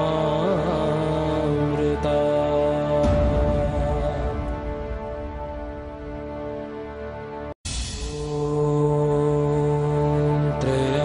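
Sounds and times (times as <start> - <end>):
devotional music: 0.0 - 11.0.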